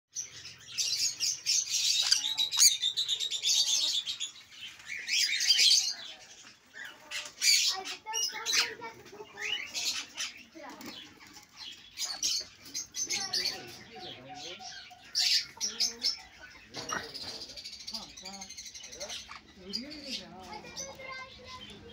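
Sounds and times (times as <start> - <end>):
parrots screeching and chattering: 0.2 - 21.9.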